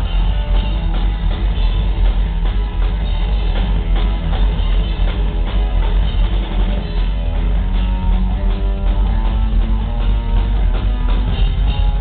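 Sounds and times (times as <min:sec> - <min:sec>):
drum kit: 0:00.0 - 0:12.0
electric guitar: 0:00.0 - 0:12.0
live rock band playing: 0:00.0 - 0:12.0
upright double bass: 0:00.0 - 0:12.0.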